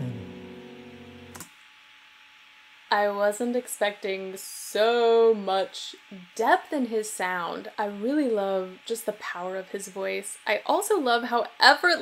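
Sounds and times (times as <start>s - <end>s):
person singing: 0.0s - 1.2s
acoustic guitar chord: 0.0s - 1.4s.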